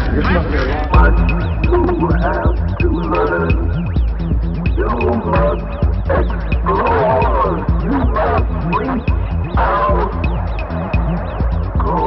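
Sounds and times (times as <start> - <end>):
low bass drone: 0.0 - 12.0.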